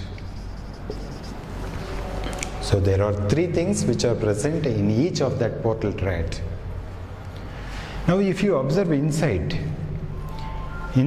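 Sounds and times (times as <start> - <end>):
marker scratching on whiteboard: 0.0 - 2.2
low hum: 0.0 - 4.8.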